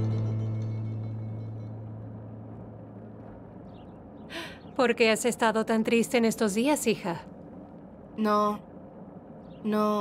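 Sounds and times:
background guitar music: 0:00.0 - 0:02.1.

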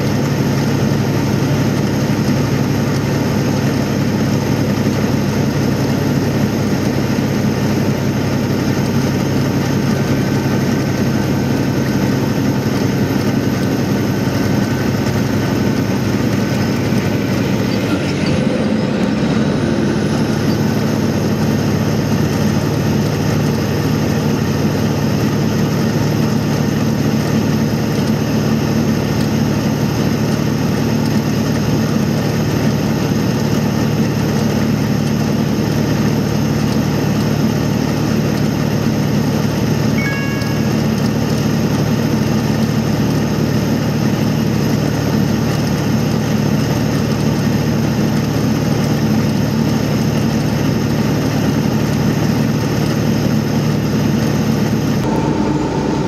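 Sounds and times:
road noise: 0:00.0 - 0:31.2, 0:50.6 - 0:56.0
vehicle engine drone: 0:00.0 - 0:56.0
two-note electronic beep: 0:40.0 - 0:41.6.

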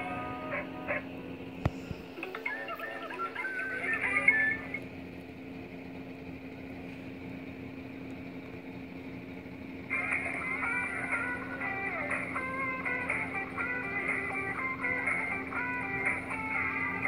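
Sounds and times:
steady low hum: 0:00.0 - 0:17.0
tinny music from small speakers: 0:10.1 - 0:17.0.

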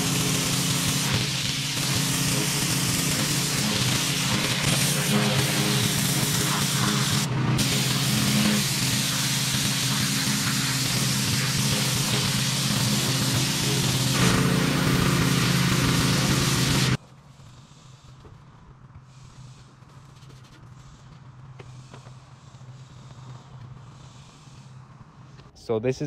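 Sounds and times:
pressure washer engine running: 0:00.0 - 0:17.0
pressure washer spraying concrete: 0:00.0 - 0:18.2, 0:19.0 - 0:25.5.

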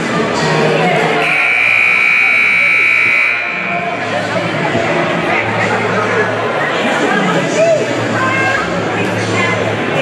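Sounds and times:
crowd chatter: 0:00.0 - 0:10.0
scoreboard buzzer: 0:01.2 - 0:03.8.

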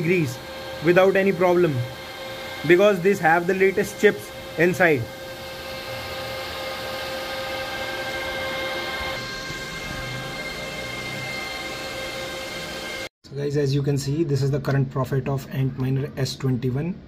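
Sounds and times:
cooling fans rushing: 0:00.0 - 0:13.1
steady whining tones: 0:00.0 - 0:13.1.

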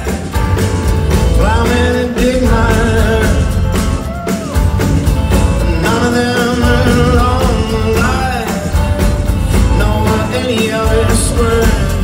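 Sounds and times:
bending guitar melody: 0:00.0 - 0:12.0
live rock band playing: 0:00.0 - 0:12.0.

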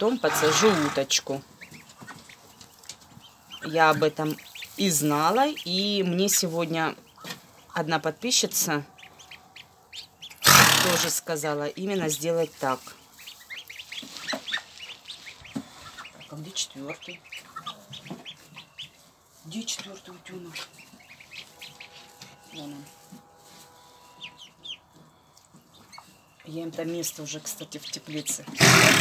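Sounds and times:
ducklings peeping: 0:00.0 - 0:22.9, 0:23.5 - 0:28.7.

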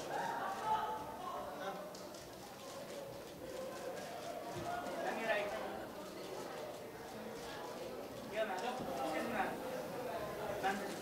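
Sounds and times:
indistinct chatter: 0:00.0 - 0:11.0.

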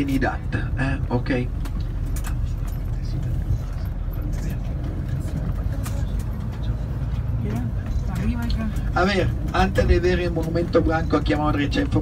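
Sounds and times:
bus engine and tyres rumbling: 0:00.0 - 0:12.0.

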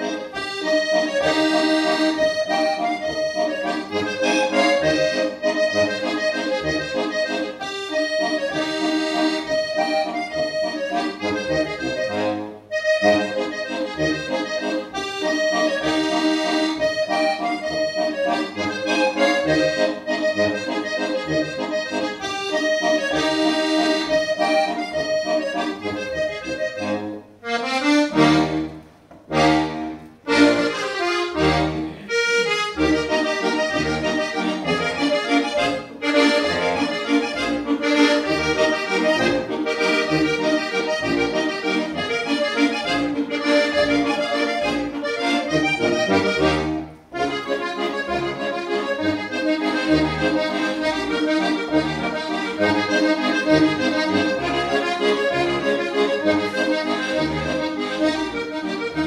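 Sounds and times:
button accordions playing: 0:00.0 - 0:59.0.

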